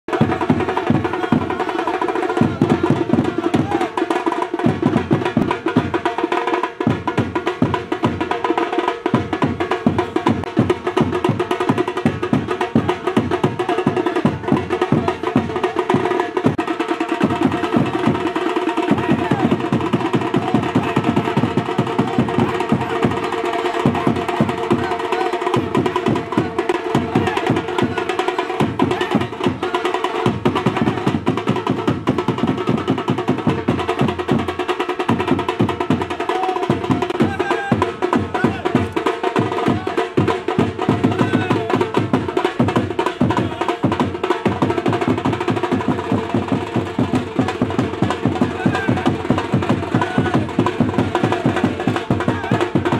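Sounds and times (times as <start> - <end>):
street drums beating: 0.0 - 52.9.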